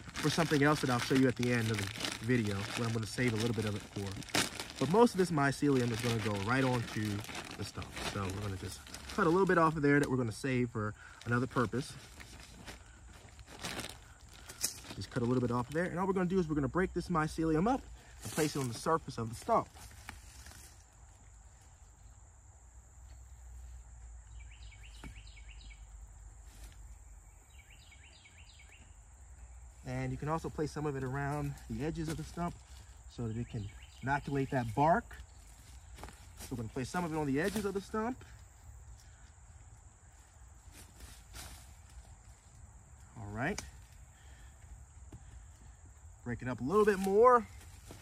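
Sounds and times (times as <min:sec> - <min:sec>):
crumbling and rustling by hand: 0:00.0 - 0:16.4, 0:17.6 - 0:22.1, 0:29.7 - 0:44.0, 0:45.0 - 0:48.0
high insect drone: 0:00.0 - 0:48.0.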